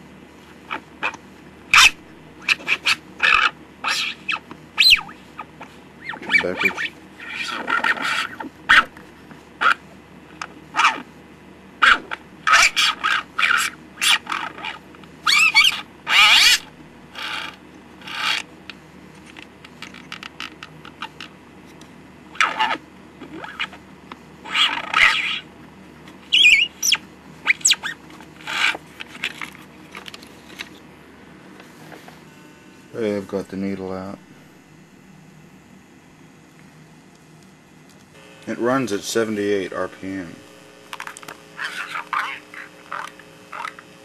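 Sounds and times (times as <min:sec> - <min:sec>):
toy record playing animal sounds: 0:00.7 - 0:09.0, 0:09.6 - 0:11.1, 0:11.8 - 0:18.5, 0:19.2 - 0:21.4, 0:22.4 - 0:25.5, 0:26.2 - 0:30.7, 0:40.9 - 0:44.0.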